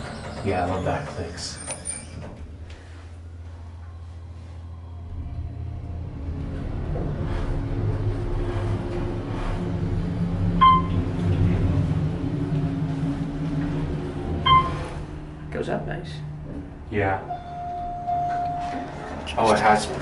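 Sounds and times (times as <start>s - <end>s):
elevator machinery hum: 0.0s - 20.0s.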